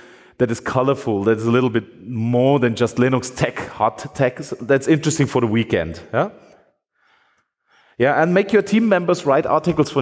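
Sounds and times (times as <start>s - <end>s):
man speaking into microphone: 0.3s - 6.4s, 8.0s - 10.0s.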